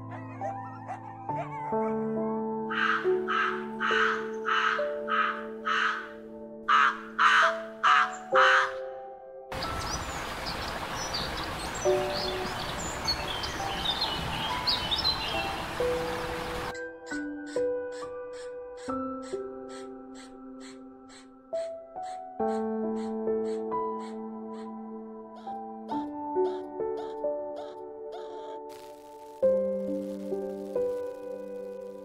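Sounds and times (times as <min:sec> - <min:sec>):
soft music: 0:00.0 - 0:32.0
crow cawing: 0:02.7 - 0:08.9, 0:17.5 - 0:24.8, 0:25.4 - 0:28.6
steady outdoor hiss: 0:09.5 - 0:16.8, 0:28.7 - 0:32.0
small birds chirping: 0:09.5 - 0:17.2, 0:25.4 - 0:29.0.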